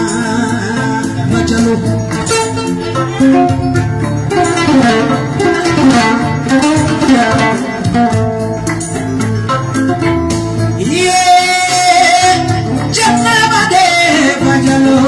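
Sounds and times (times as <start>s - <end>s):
light percussion: 0.0s - 15.0s
plucked strings: 0.7s - 11.0s
woman singing into microphone: 10.8s - 15.0s.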